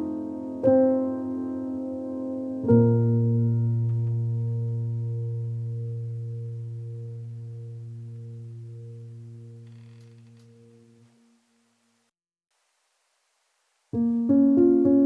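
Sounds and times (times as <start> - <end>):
low sustained piano chord: 0.0 - 9.7.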